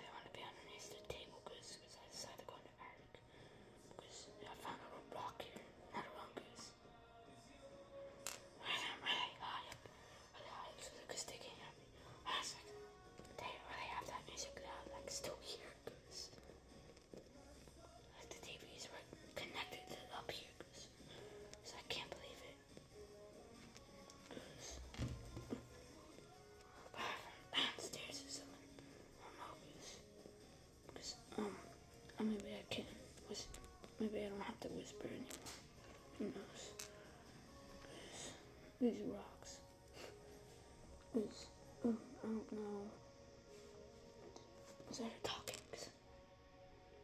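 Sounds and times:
boy whispering: 0.0 - 3.2, 3.9 - 6.8, 8.6 - 16.5, 17.2 - 23.3, 23.9 - 30.1, 30.9 - 46.0.

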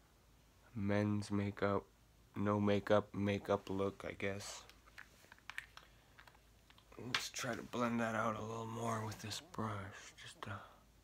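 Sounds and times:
makeup items clicking: 4.6 - 7.3.

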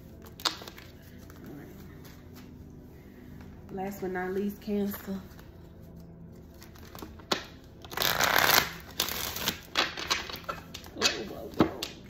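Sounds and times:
cards snapping: 0.2 - 1.4, 6.8 - 12.0.

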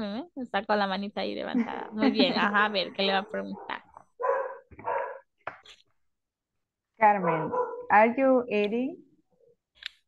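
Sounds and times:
dog barking: 3.5 - 5.3, 7.2 - 7.9.

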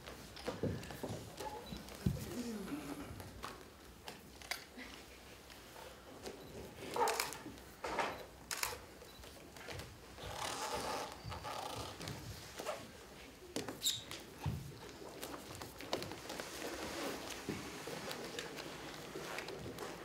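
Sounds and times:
bare feet on stage floor: 0.0 - 4.2, 9.2 - 20.0.

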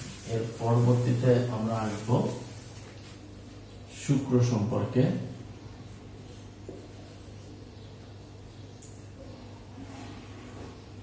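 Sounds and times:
marker pen rubbing on whiteboard: 0.0 - 3.8, 5.9 - 7.8.

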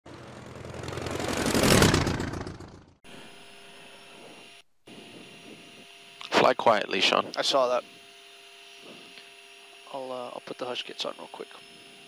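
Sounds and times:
jet engine rushing: 0.1 - 2.8
cockpit hum: 0.1 - 12.0
faint steady tones: 3.1 - 12.0.

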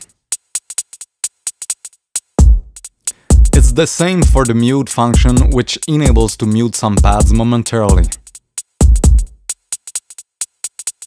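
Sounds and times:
drum machine hi-hat ticks: 0.0 - 11.0.

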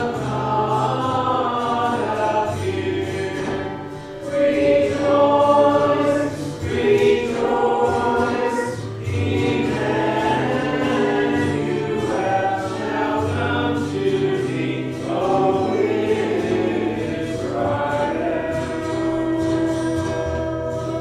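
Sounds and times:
congregation singing a hymn: 0.0 - 21.0.

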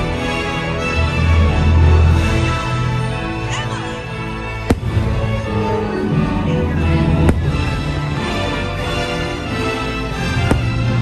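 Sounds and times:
music with held notes: 0.0 - 11.0
firework bang: 4.7 - 5.2, 7.2 - 7.8, 10.4 - 11.0.

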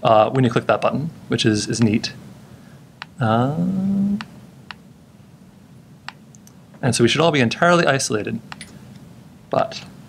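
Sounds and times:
person saying uh: 3.2 - 4.2.

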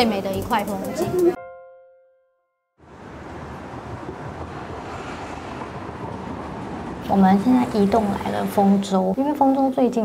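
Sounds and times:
traffic hissing on wet roads: 2.9 - 9.0.

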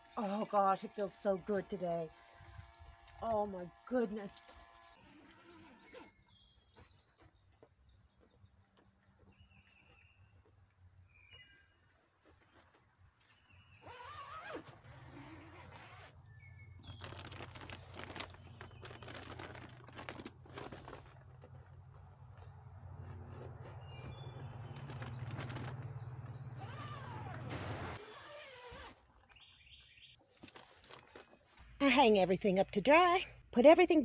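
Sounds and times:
pump motor hum: 23.0 - 28.2.

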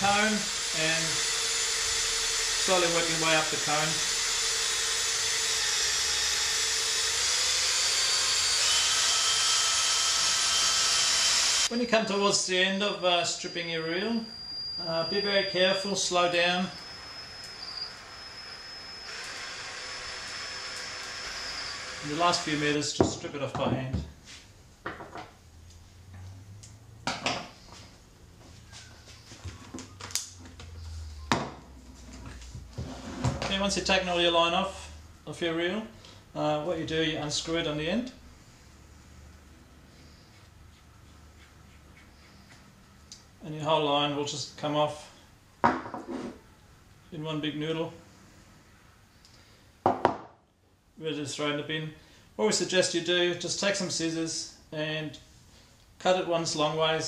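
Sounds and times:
cordless drill motor whine: 0.0 - 11.7, 12.9 - 22.7
tools knocking on wooden workbench: 24.8 - 25.3, 31.3 - 31.6, 45.6 - 46.3, 49.9 - 50.3.

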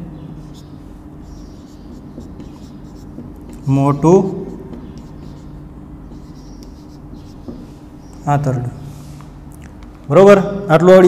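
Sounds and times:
low steady hum: 0.0 - 11.0
marker writing on whiteboard: 0.4 - 8.4.

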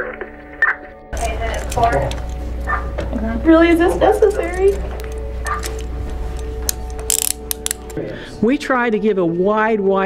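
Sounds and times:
handcuffs ratcheting clicks: 1.2 - 2.4, 4.3 - 8.0.

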